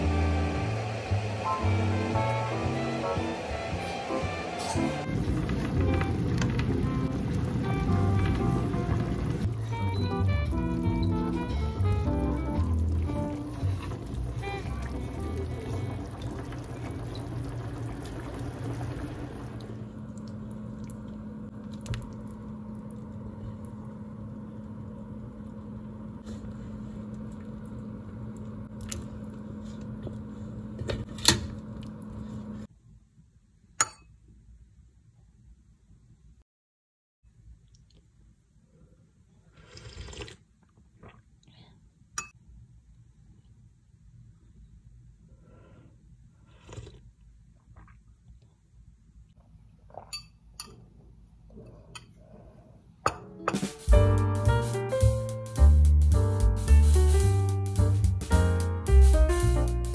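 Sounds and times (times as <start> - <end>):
guitar background music: 0.0 - 16.3, 53.3 - 59.9.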